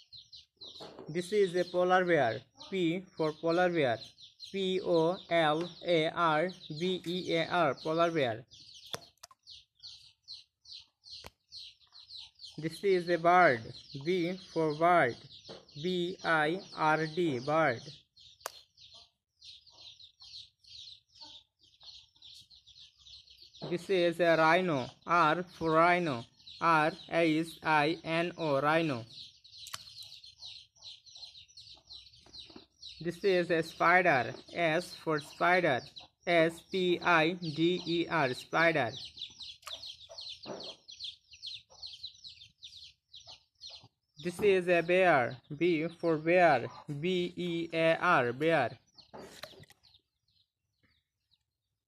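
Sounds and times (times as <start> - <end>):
high bird chirps: 0.0 - 51.5
low clucking bird calls: 0.0 - 51.5.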